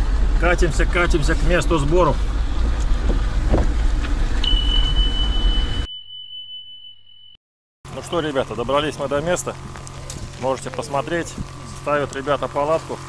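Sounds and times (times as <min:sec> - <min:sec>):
car engine and road noise: 0:00.0 - 0:05.9, 0:07.9 - 0:13.0
steady high beep: 0:04.4 - 0:07.4.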